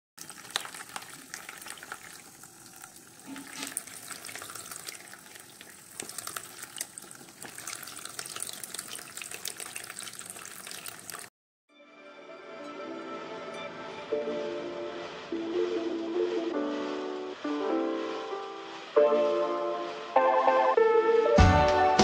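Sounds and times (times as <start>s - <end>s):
water jet splashing into basin: 0.2s - 11.3s.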